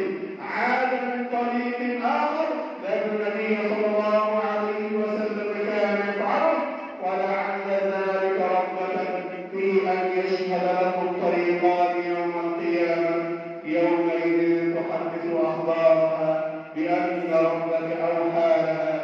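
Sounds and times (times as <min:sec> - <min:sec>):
man chanting into a microphone: 0:00.0 - 0:19.0.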